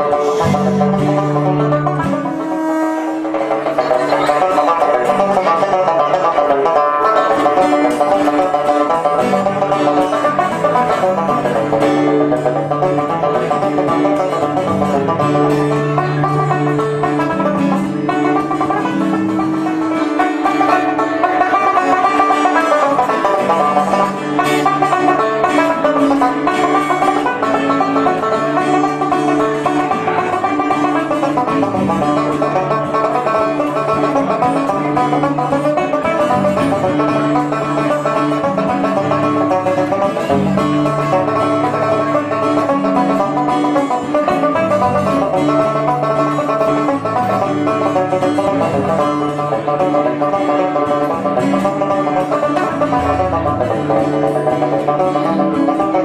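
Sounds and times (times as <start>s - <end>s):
acoustic guitar chords: 0.0s - 56.0s
banjo picking: 0.0s - 56.0s.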